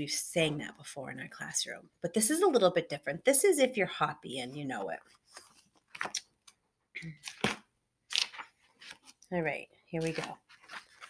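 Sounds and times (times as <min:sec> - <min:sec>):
book pages rustling: 0:05.0 - 0:06.6, 0:07.2 - 0:09.3, 0:10.0 - 0:11.0.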